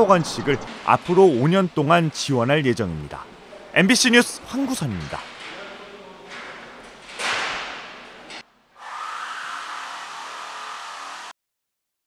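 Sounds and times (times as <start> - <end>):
whoosh transition effect: 0.0 - 1.2
steady hiss-like tone: 0.0 - 7.1.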